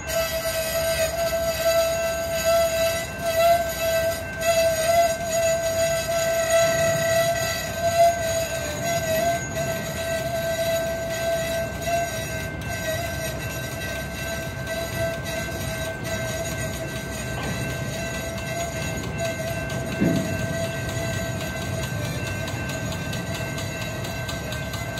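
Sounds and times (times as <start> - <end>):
metallic squeal: 0.0 - 24.9
train rumble: 0.0 - 24.9.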